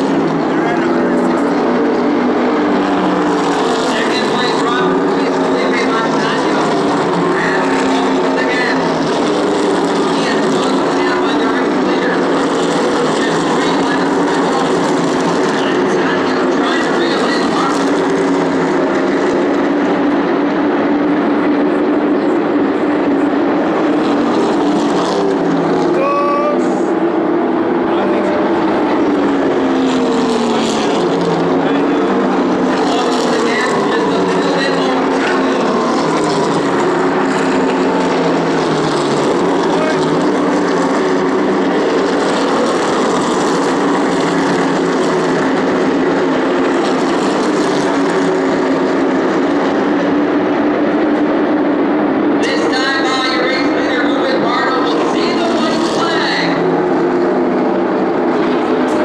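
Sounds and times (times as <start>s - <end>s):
race cars passing at speed: 0.0s - 59.0s.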